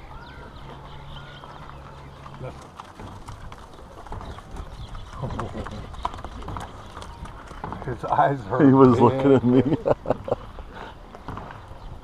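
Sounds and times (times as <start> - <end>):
hooves clopping on gravel: 0.0 - 9.5.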